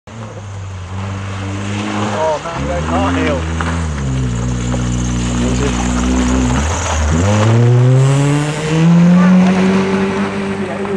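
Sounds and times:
rally car engine: 0.1s - 10.9s.

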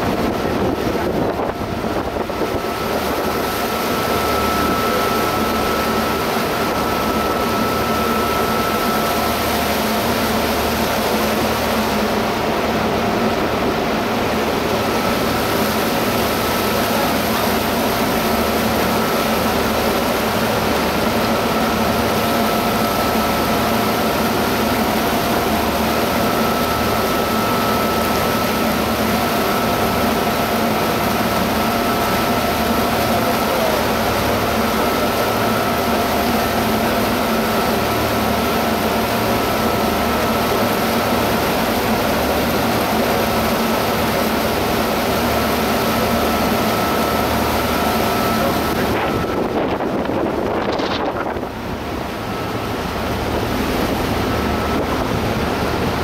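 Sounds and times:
boat engine droning: 0.0s - 56.0s
propeller wash churning: 0.0s - 56.0s.

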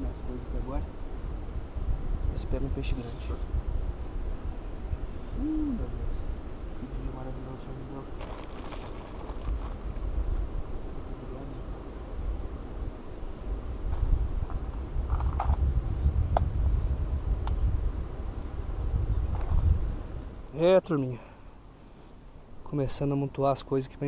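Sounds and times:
wind buffeting microphone: 0.0s - 20.5s.

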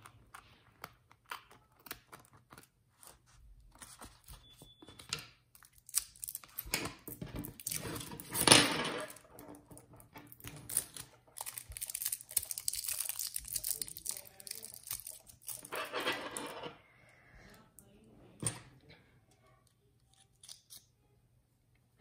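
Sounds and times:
paper rustling and crinkling: 2.0s - 5.0s
scissors snipping paper: 20.1s - 20.9s.

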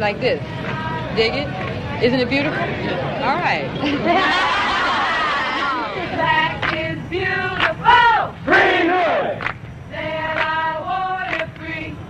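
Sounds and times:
voices chanting together: 0.4s - 12.0s.

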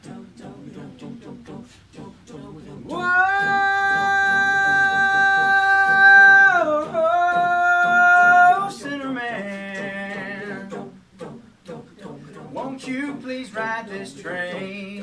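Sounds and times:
vocal chugging pulse: 0.0s - 15.0s
voices singing a cappella: 0.0s - 15.0s.

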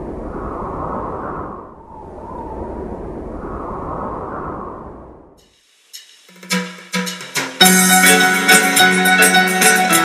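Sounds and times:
rushing wind-like whoosh: 0.0s - 5.4s.

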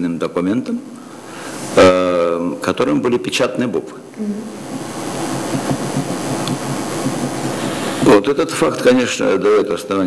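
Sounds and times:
room hiss: 0.0s - 10.0s
low hum: 4.4s - 8.1s.

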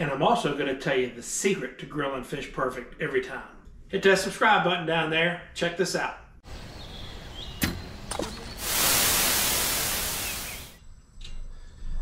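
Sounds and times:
aerosol spray hissing: 8.5s - 10.8s.

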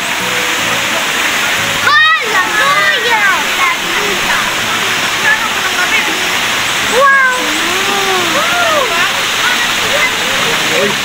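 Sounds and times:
waterfall rushing: 0.0s - 11.0s
people's voices: 0.5s - 11.0s.

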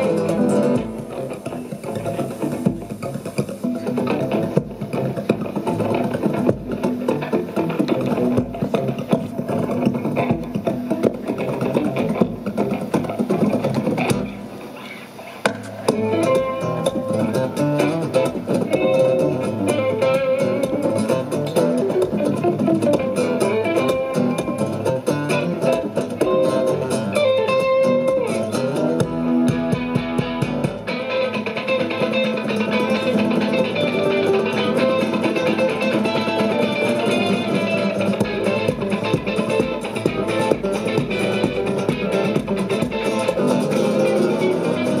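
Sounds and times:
acoustic guitars strumming: 0.0s - 45.0s
picked guitar lead melody: 0.0s - 45.0s.

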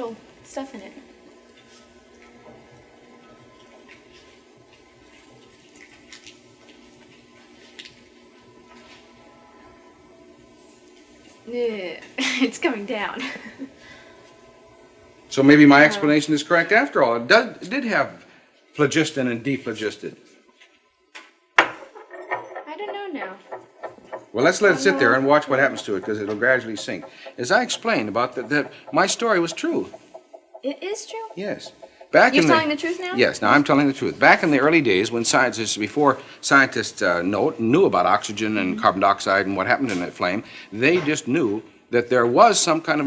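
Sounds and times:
faint television soundtrack hiss: 0.0s - 43.0s
person's voice: 15.4s - 16.3s, 24.4s - 26.4s, 32.2s - 33.6s, 38.3s - 39.0s.

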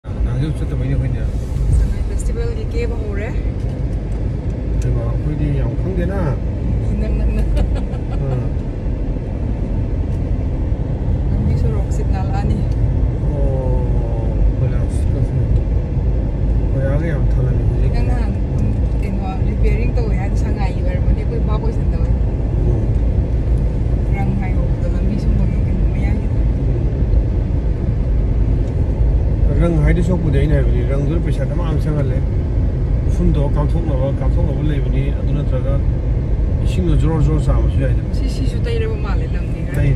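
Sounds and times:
car engine and road noise: 0.0s - 39.9s.

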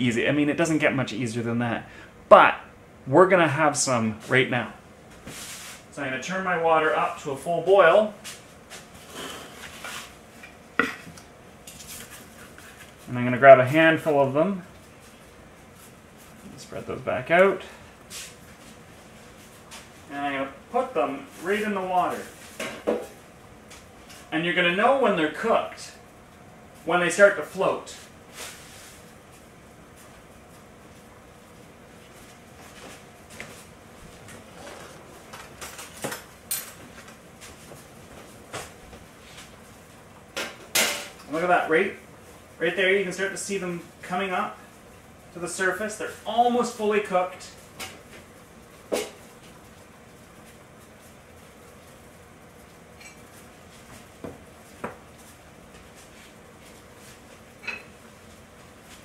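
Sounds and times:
steady low hiss: 0.0s - 59.0s.

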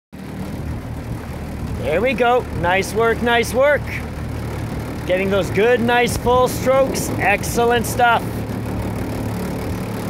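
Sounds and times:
outboard motor running: 0.2s - 10.0s.

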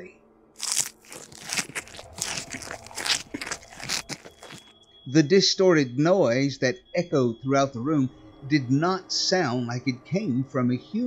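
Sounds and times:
mouth chewing loudly: 0.6s - 4.7s
wet crunches: 0.6s - 4.7s.

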